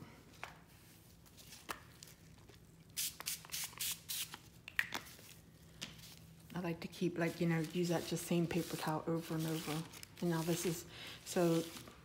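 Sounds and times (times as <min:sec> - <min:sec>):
spray bottle hissing: 0:03.0 - 0:04.4.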